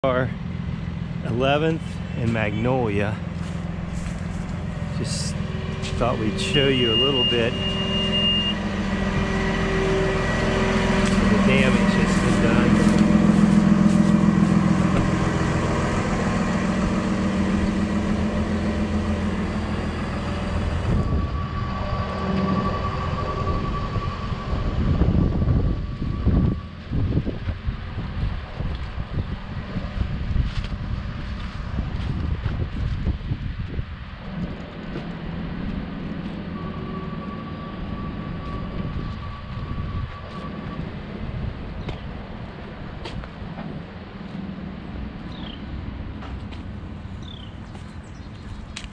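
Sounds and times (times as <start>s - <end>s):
outdoor rumble with low gusts: 0.0s - 48.9s
truck engine running: 0.0s - 48.9s
faint held tone: 4.8s - 27.0s, 36.2s - 41.4s.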